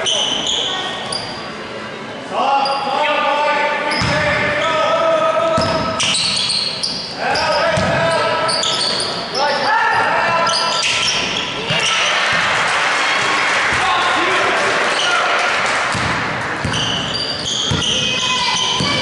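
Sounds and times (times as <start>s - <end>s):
sneakers squeaking: 0.0s - 1.7s, 2.6s - 2.9s, 3.9s - 4.9s, 5.5s - 12.5s, 14.9s - 19.0s.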